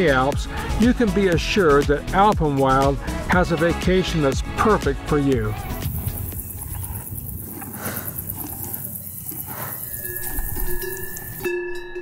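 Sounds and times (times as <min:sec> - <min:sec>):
cowbells ringing: 0:09.8 - 0:12.0.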